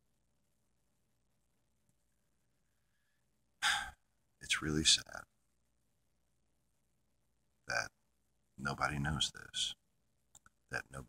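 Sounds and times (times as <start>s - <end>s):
man breathing: 2.6s - 4.0s.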